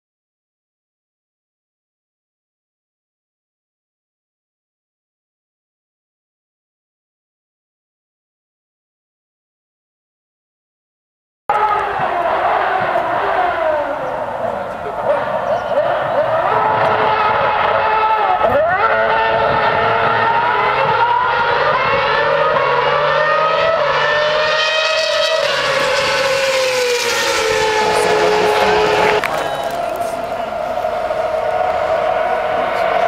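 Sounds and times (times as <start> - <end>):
racing car engines revving: 11.5 - 33.0.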